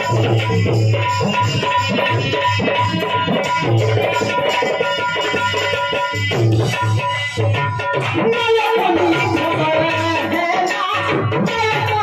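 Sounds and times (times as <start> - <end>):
hand-drum beat: 0.0 - 12.0.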